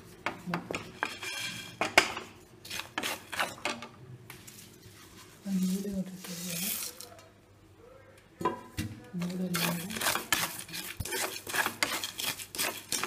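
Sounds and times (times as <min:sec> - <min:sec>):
wooden spatula scraping metal pan: 0:00.7 - 0:01.9, 0:02.6 - 0:03.7, 0:09.2 - 0:13.0.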